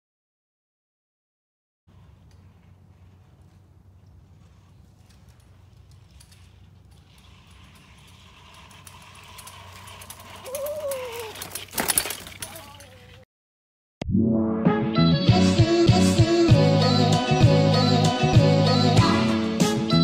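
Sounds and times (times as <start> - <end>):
bike clatter: 1.9 - 13.2
bike tyres crunching on leaves: 1.9 - 13.2.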